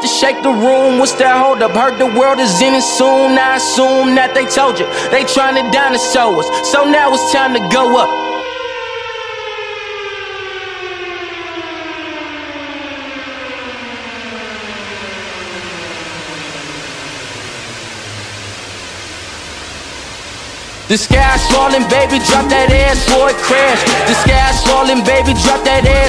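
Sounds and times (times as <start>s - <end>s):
falling electronic siren tone: 0.0s - 26.0s.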